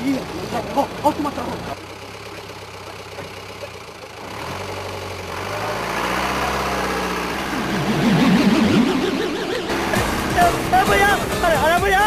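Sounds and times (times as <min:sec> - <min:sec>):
bus engine running: 0:00.0 - 0:12.0
wavering pitched sound: 0:07.3 - 0:10.7.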